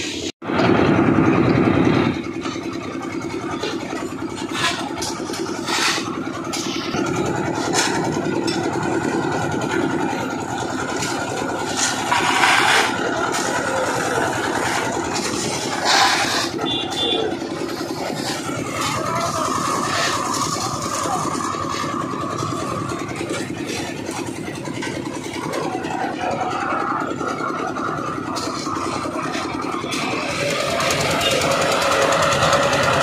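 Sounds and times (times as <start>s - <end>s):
concrete mixer motor humming: 0.2s - 33.0s
short scraping noises: 11.0s - 22.0s.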